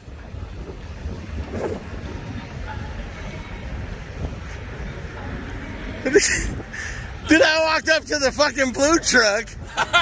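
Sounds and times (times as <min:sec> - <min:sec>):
wind buffeting microphone: 0:00.0 - 0:10.0
person laughing: 0:09.7 - 0:10.0.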